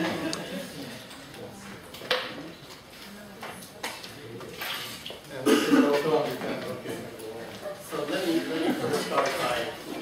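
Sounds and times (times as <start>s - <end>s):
person coughing: 5.4s - 6.0s.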